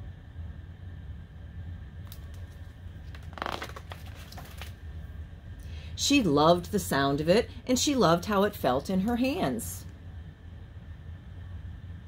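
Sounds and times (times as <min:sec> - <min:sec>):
steady low hum: 0:00.0 - 0:12.0
book pages turning: 0:02.1 - 0:04.8.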